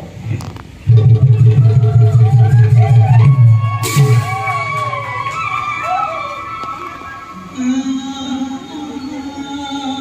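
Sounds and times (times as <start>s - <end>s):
loud fast low drumbeat: 0.8s - 5.4s
steady higher held note: 0.9s - 5.4s.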